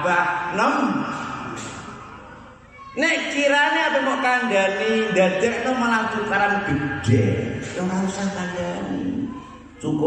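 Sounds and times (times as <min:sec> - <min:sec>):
man speaking through microphone: 0:00.0 - 0:01.6, 0:02.9 - 0:10.0
background noise: 0:00.0 - 0:10.0.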